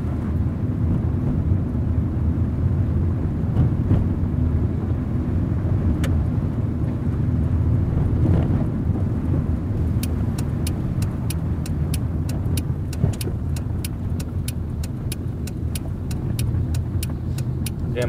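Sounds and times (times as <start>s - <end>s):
car engine and road rumble: 0.0s - 18.0s
turn signal ticking: 9.6s - 18.0s.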